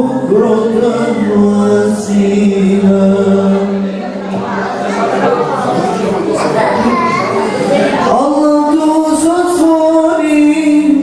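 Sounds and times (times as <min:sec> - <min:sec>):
men singing unaccompanied over pa: 0:00.0 - 0:04.2, 0:07.9 - 0:11.0
children's voices and chatter: 0:00.0 - 0:10.8.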